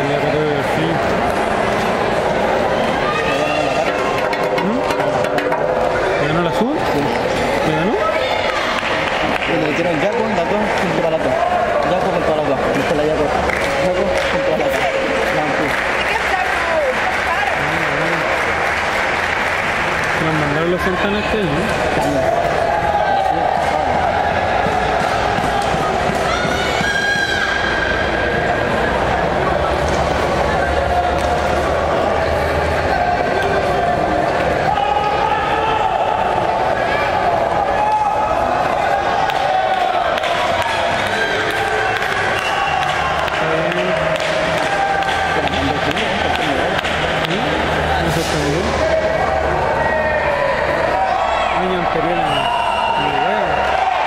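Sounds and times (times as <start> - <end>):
crowd talking and shouting: 0.0 - 54.0.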